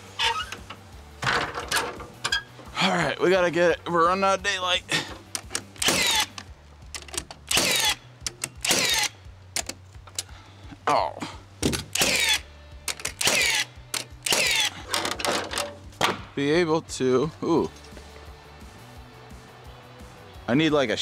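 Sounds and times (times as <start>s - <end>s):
sharp strikes on wood: 15.7s - 16.4s.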